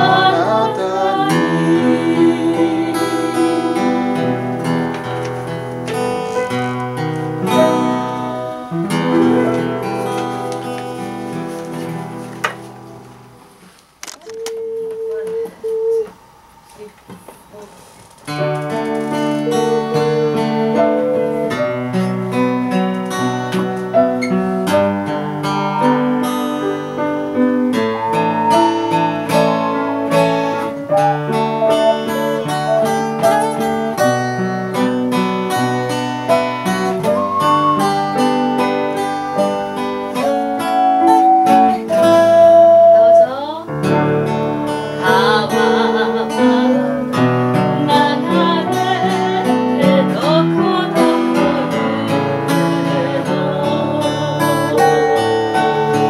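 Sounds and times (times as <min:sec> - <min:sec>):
person singing with vibrato: 0:00.0 - 0:04.6, 0:07.5 - 0:09.9, 0:19.4 - 0:21.7, 0:40.2 - 0:43.7, 0:44.9 - 0:56.0
ocarina playing: 0:00.0 - 0:05.3, 0:06.0 - 0:11.3, 0:14.2 - 0:16.9, 0:18.4 - 0:22.4, 0:23.9 - 0:43.6, 0:53.6 - 0:56.0
plucked-string accompaniment: 0:00.0 - 0:13.3, 0:18.3 - 0:56.0.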